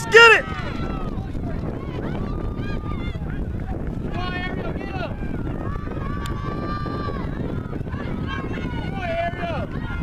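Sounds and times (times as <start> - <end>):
spectator yelling: 0.0 - 0.8
wind rumble on microphone: 0.0 - 10.0.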